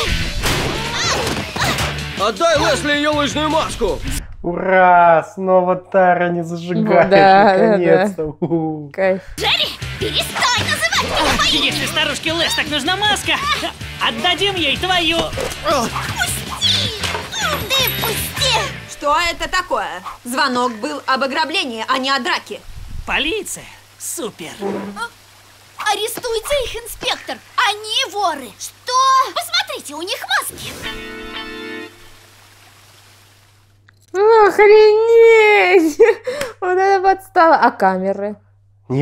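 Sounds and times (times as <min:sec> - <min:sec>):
cartoon background music: 0:00.0 - 0:04.0, 0:09.4 - 0:19.7, 0:30.5 - 0:32.1
cartoon characters yelping: 0:00.6 - 0:01.8, 0:09.4 - 0:13.8, 0:15.6 - 0:18.8
water spraying from sprinklers: 0:09.4 - 0:33.7.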